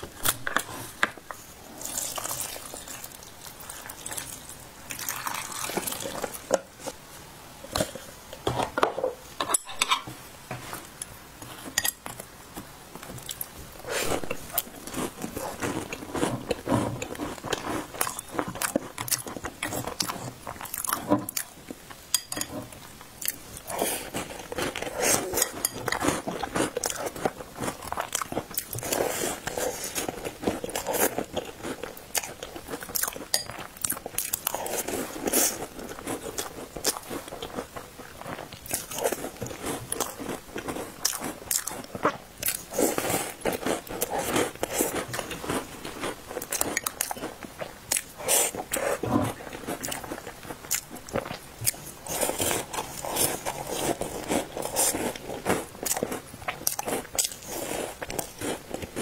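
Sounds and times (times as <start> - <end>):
chewing soft biscuits: 11.5 - 22.0, 22.7 - 59.0.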